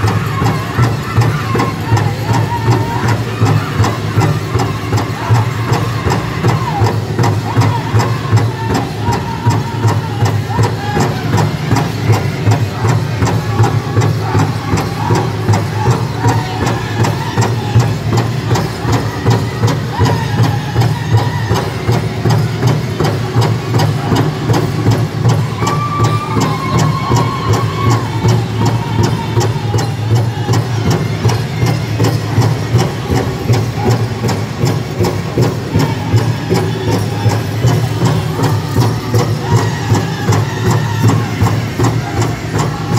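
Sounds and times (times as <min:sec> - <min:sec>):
big drum steady beat: 0:00.0 - 0:42.9
group of voices singing: 0:35.3 - 0:42.9.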